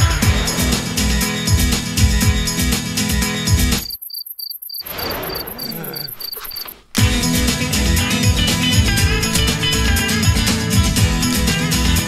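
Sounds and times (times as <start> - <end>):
background music: 0.0 - 3.8, 7.0 - 12.0
insects chirping: 3.7 - 7.0
higher faster insect pulsing: 3.8 - 6.8.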